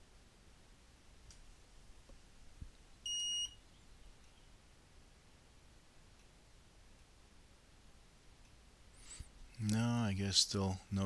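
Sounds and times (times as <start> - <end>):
short electronic beep: 3.1 - 3.6.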